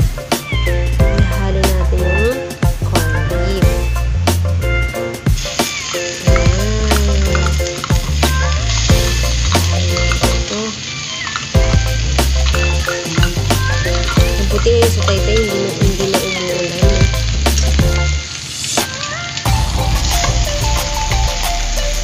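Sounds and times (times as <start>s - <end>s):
background music with bass line: 0.0s - 5.6s, 6.3s - 10.5s, 11.6s - 16.2s, 16.8s - 18.2s, 19.5s - 22.0s
meat sizzling in frying pan: 0.0s - 22.0s.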